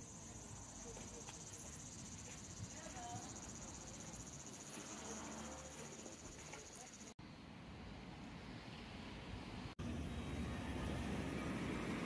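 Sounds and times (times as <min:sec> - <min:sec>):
insects trilling: 0:00.0 - 0:07.1.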